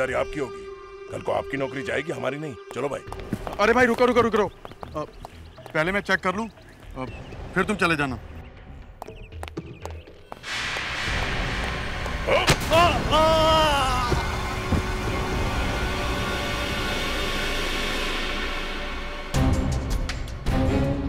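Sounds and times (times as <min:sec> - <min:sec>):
dramatic boom with noisy rush: 0:10.5 - 0:13.5
man's falling cry: 0:12.3 - 0:14.5.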